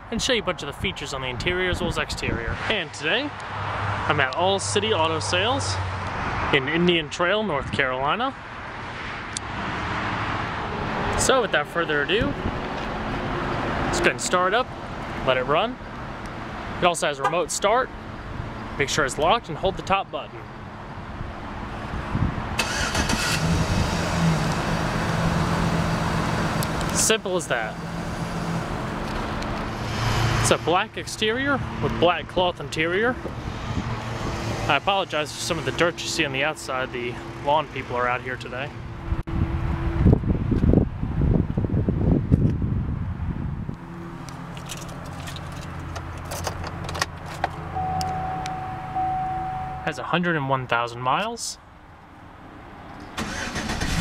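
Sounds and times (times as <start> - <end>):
engine starter cranking: 22.6 - 23.7, 53.2 - 54.0
steady high tone: 47.7 - 50.6.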